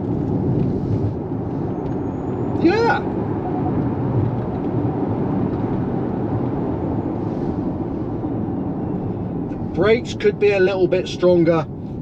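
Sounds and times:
tyre and road noise in car: 0.0 - 12.0.

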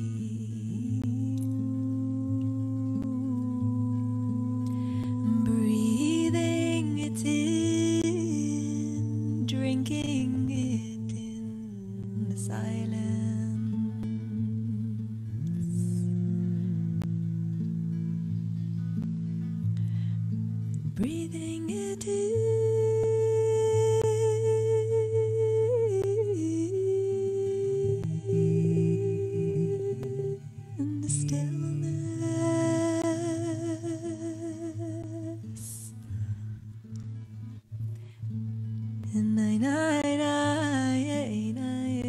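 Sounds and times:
higher voice singing with vibrato: 0.0 - 18.3, 20.9 - 36.0.

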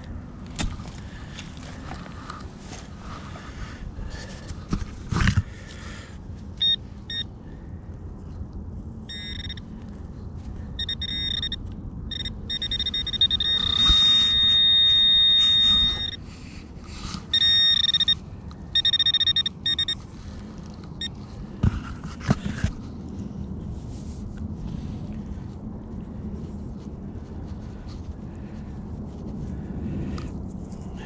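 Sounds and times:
metal detector beeping: 6.6 - 7.3, 9.1 - 9.7, 10.7 - 16.3, 17.2 - 20.0, 21.0 - 21.2.

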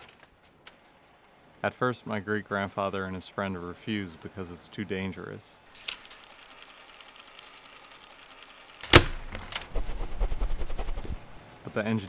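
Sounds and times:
rapid mechanical clicking: 5.8 - 11.1.

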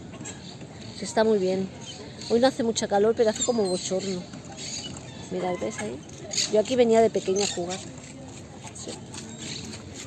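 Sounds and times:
faint chatter of people: 0.0 - 10.0
light footsteps: 5.8 - 10.0.

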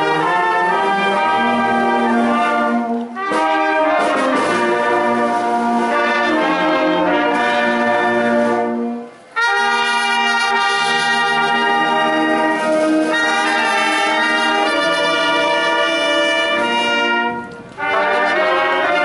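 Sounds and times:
brass band playing slow chords: 0.0 - 19.0.

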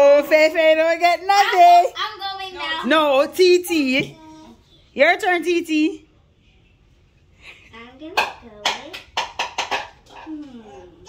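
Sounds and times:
excited children's voices: 1.2 - 3.2.

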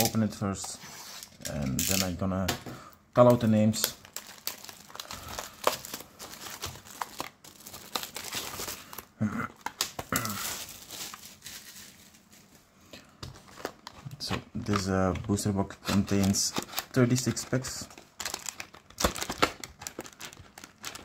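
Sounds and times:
shrink wrap crinkling and tearing: 3.2 - 12.6, 13.4 - 21.0.

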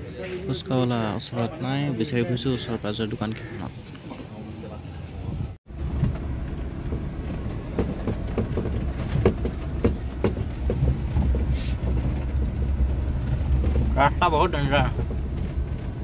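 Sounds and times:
car engine and tyre rumble: 0.0 - 16.0
knocks and rattles over bumps: 5.7 - 16.0.

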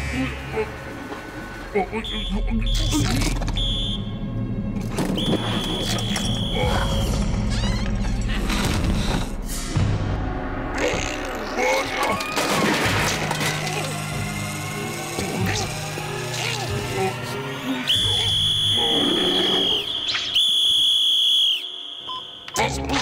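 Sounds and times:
whistle blasts: 3.6 - 4.2, 5.0 - 7.1, 17.8 - 22.6
cartoon background music: 9.8 - 20.4, 22.4 - 23.0.

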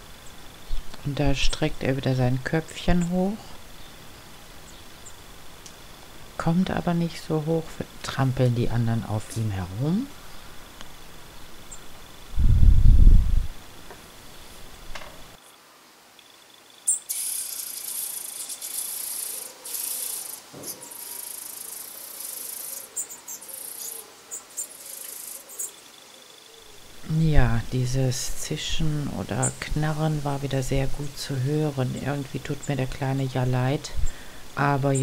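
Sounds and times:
nestlings begging with rasping chatter: 16.9 - 26.5.

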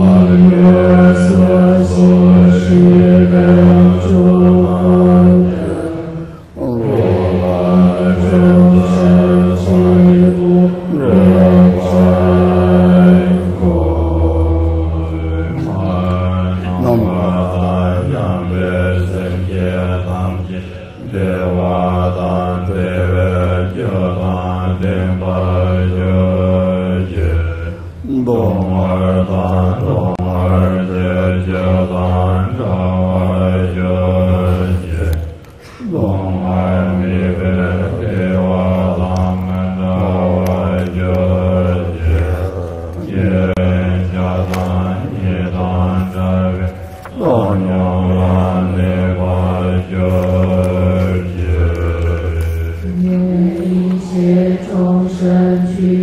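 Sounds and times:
man chanting in low monotone: 0.0 - 56.0.

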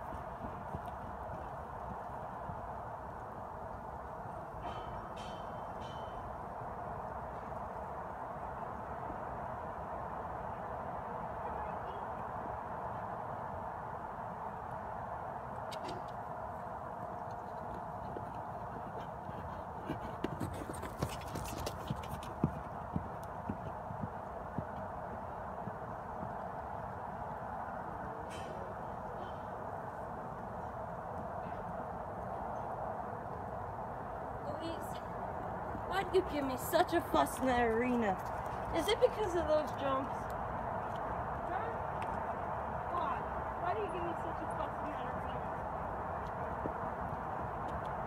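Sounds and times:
horse hooves on soft ground: 0.0 - 9.5, 15.5 - 33.8, 34.5 - 48.0.

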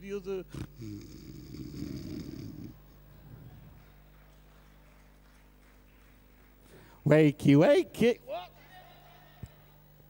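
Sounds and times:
man snoring into a microphone: 0.5 - 2.8.

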